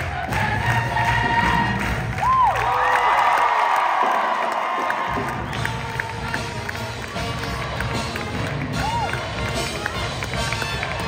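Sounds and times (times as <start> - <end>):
live band playing: 5.2 - 11.0.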